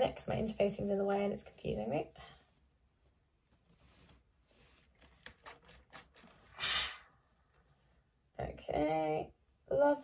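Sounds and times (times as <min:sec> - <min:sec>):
fabric rustling: 0:02.3 - 0:06.6.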